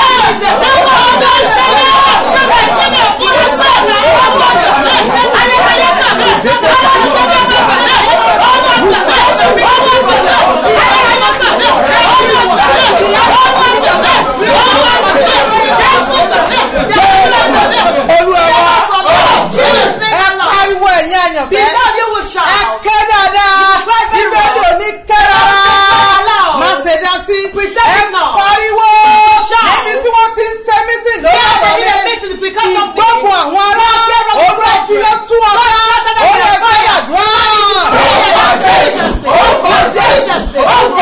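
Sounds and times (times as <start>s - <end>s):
voices praying aloud: 0.0s - 41.0s.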